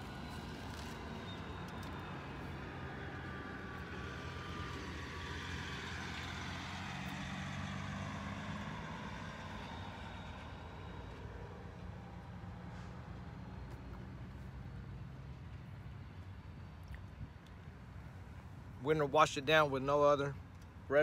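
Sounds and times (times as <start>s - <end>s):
truck engine driving past: 0.0s - 16.4s.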